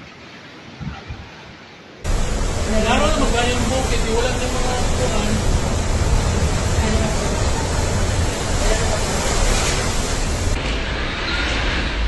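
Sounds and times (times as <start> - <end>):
strong wind and driving rain: 0.0 - 12.0.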